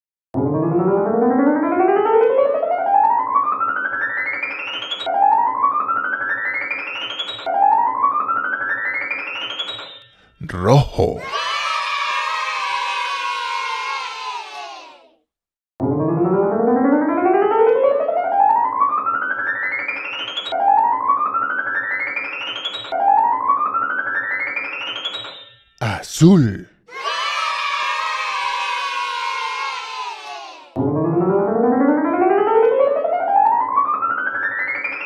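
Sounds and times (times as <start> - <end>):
children cheering: 11.2 - 15.0, 26.9 - 30.7.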